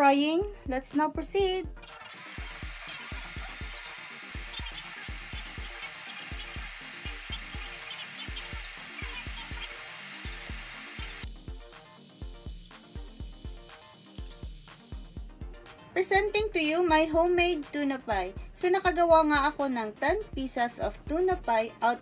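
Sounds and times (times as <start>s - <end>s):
background music with beat: 0.0s - 21.6s
food deep-frying in oil: 1.8s - 15.3s.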